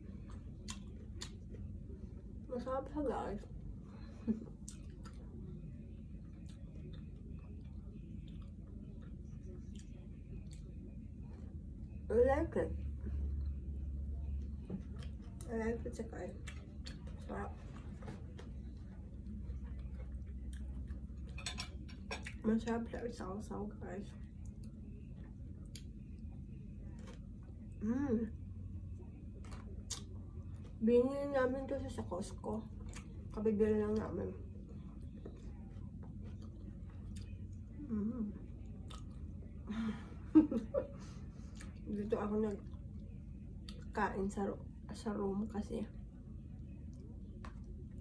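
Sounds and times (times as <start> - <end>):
low steady hum: 0.0 - 48.0
mouth biting and chewing food: 29.4 - 30.8, 38.6 - 39.4.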